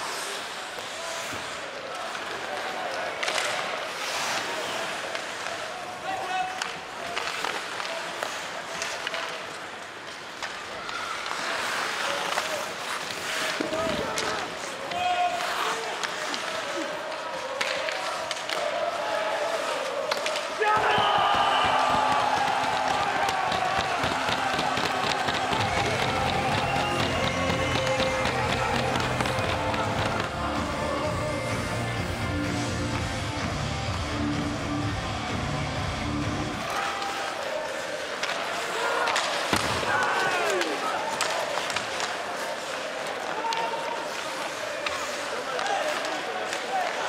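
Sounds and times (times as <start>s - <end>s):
hockey sticks and puck clacking: 0.0s - 33.3s, 36.5s - 47.0s
crowd cheering loudly: 18.5s - 31.2s
crowd murmur: 21.0s - 47.0s.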